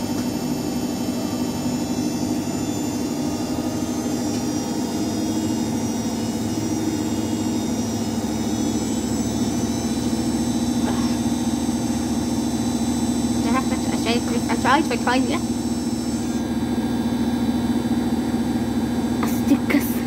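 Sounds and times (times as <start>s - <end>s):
washing machine running: 0.0s - 20.0s.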